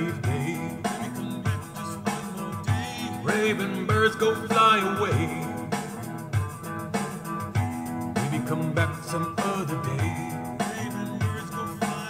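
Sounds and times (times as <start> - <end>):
bass notes: 0.0 - 12.0
guitar playing: 0.0 - 12.0.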